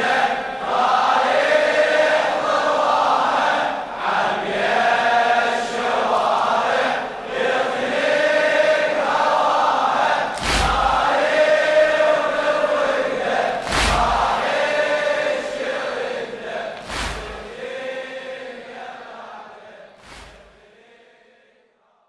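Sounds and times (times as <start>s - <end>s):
male voices chanting: 0.0s - 21.4s
heavy beat: 10.4s - 11.1s, 13.6s - 14.4s, 16.8s - 17.6s.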